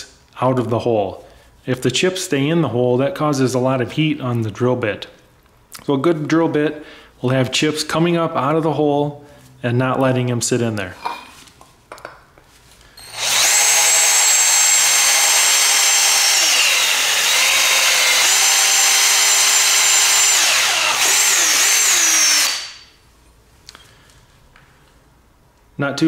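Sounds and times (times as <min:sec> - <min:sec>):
cordless drill motor whine: 0:13.0 - 0:22.9.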